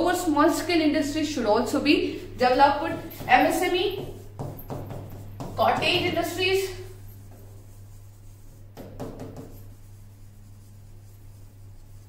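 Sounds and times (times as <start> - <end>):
steady low hum: 0.0 - 12.0
pen scratching on a board: 3.2 - 6.4, 7.2 - 12.0.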